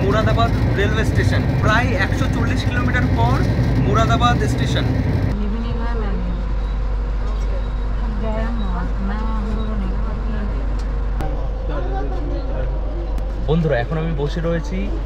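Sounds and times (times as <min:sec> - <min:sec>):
low hum of train coach: 0:00.0 - 0:15.0
low rumble of train running: 0:00.0 - 0:15.0.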